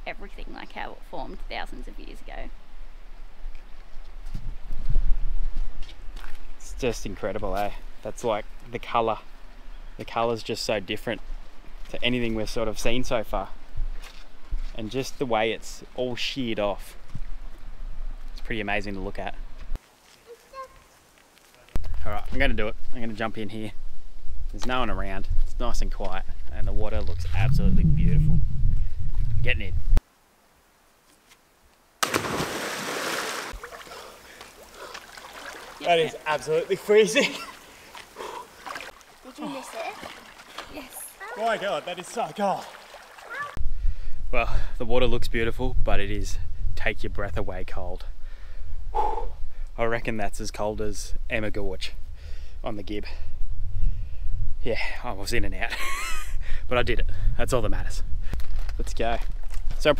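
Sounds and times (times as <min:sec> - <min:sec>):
footsteps on rocky path: 0:13.8 - 0:14.8
low microphone rumble: 0:26.3 - 0:30.0
loud splash into pool: 0:32.0 - 0:33.8.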